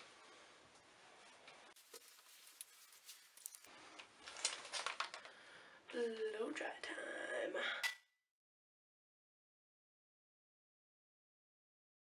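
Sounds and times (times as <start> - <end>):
handling clicks and rustling: 1.8 - 5.3.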